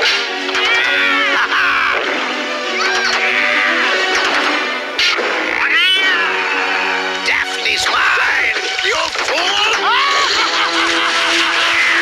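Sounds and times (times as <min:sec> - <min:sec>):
background music: 0:00.0 - 0:12.0
cartoon cat yowling: 0:00.5 - 0:02.0, 0:05.6 - 0:07.0.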